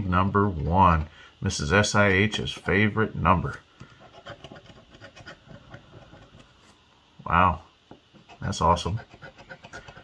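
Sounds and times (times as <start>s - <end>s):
coin scraping scratch card: 4.0s - 6.5s, 8.2s - 10.0s.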